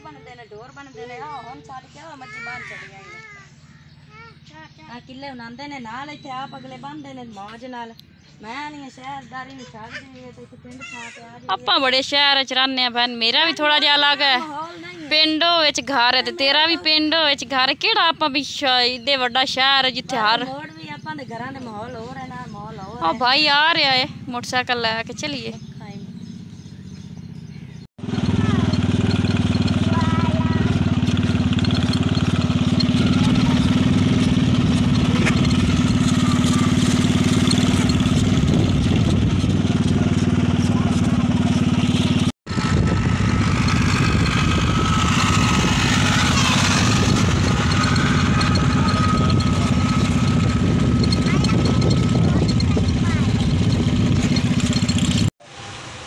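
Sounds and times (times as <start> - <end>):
motorcycle engine cruising: 0.0 - 56.0.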